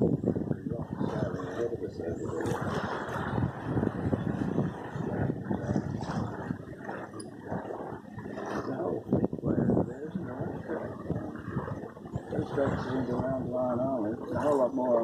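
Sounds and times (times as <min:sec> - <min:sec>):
wind gusting over microphone: 0:00.0 - 0:15.0
indistinct talk: 0:06.9 - 0:15.0.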